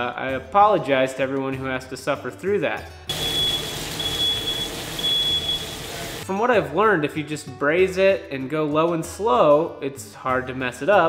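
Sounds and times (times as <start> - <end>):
smoke alarm beeping: 3.1 - 6.2
meat sizzling in a pan: 3.1 - 6.3.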